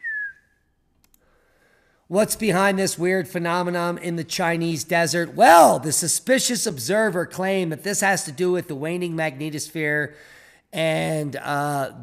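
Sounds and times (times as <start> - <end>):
man whistling a sliding note: 0.0 - 0.6
faint clicks: 0.9 - 1.3.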